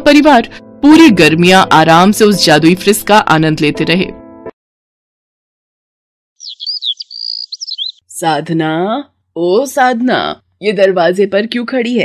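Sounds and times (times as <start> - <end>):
bird whistle: 6.4 - 8.0
birds chirping: 6.4 - 8.0.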